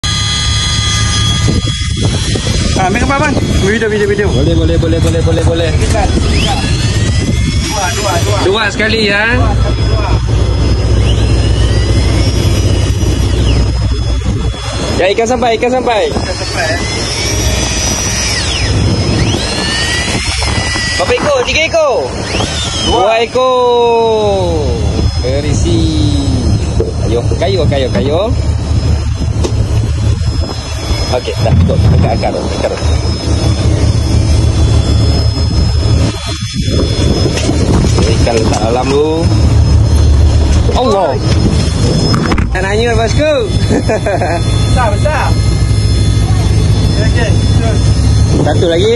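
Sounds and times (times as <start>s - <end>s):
electric fishing reel motor whine: 0.0s - 48.9s
steady low rumble: 0.0s - 48.9s.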